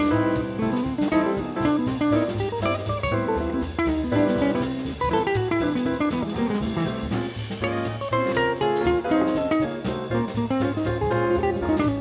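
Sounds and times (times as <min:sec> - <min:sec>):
backing track bass piano drums: 0:00.0 - 0:12.0
electric guitar jazz lines: 0:00.0 - 0:12.0.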